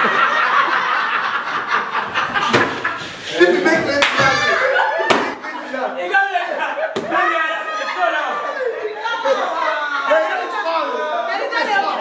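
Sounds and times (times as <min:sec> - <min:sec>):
people laughing and talking: 0:00.0 - 0:12.0.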